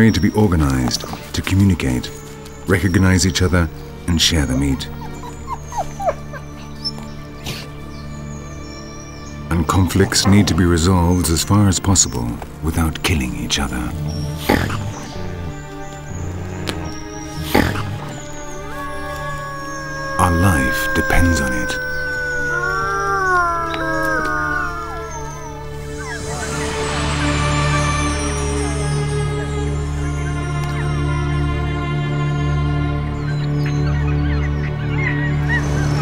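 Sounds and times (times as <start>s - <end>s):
background music: 0.0s - 36.0s
wolves yipping: 4.3s - 10.8s, 16.2s - 26.6s.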